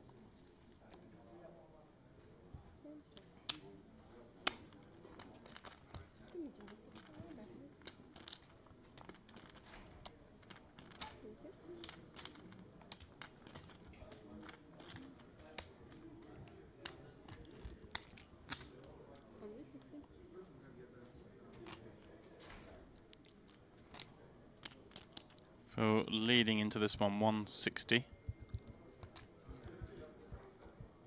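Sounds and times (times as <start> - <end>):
poker chips clicking: 4.5 - 16.1, 21.5 - 25.4.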